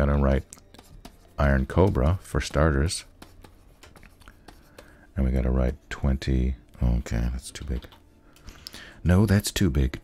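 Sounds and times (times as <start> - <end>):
stylus scratching on tablet: 0.0 - 5.4
stylus tapping on tablet: 0.6 - 5.0.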